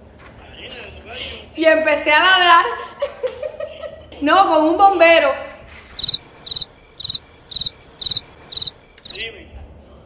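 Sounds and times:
cricket chirp sound effect: 6.0s - 9.2s.

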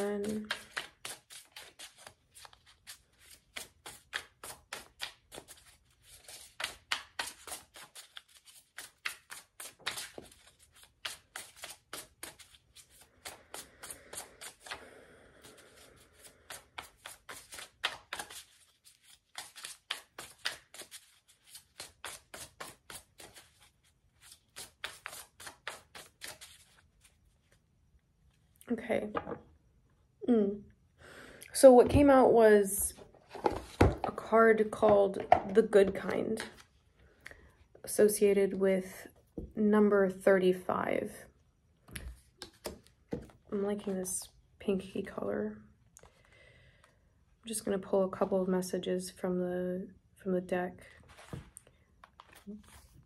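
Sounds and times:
cards being shuffled by hand: 0.0s - 27.6s, 33.0s - 36.7s, 41.9s - 44.0s, 51.0s - 53.0s.

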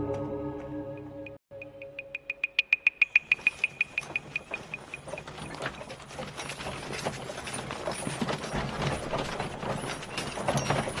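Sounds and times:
sharp high percussion knocks: 1.5s - 5.1s
horse hooves: 2.2s - 11.0s
cart rattling and creaking: 3.0s - 11.0s
tramping footsteps: 3.2s - 11.0s.

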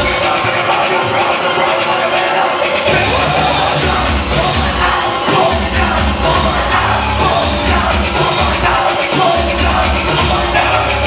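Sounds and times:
loud electronic rap music: 0.0s - 11.0s.

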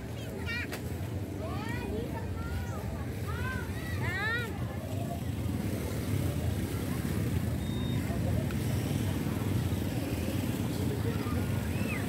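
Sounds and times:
motorbike engines passing: 1.0s - 12.0s.

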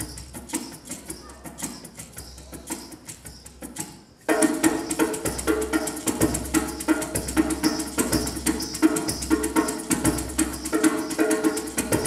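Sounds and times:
hand drum rhythm: 0.0s - 12.0s
live percussion music: 0.0s - 12.0s.

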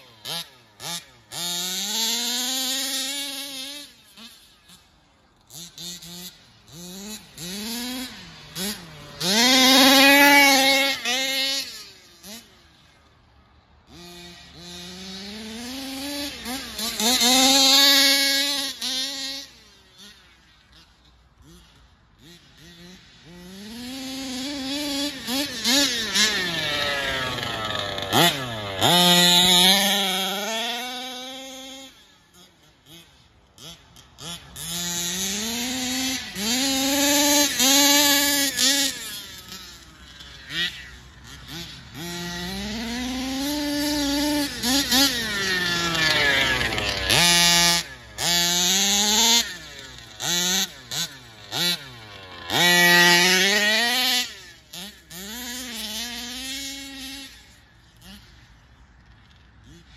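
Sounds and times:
small two-stroke engine revving: 0.0s - 59.9s.

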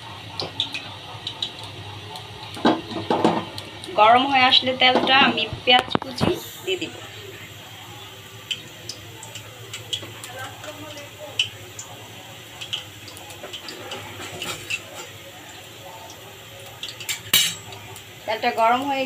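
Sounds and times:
oil crackling and popping: 0.0s - 19.0s.

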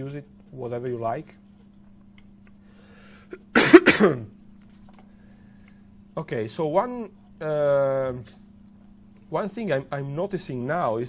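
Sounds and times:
man coughing: 3.3s - 4.3s.

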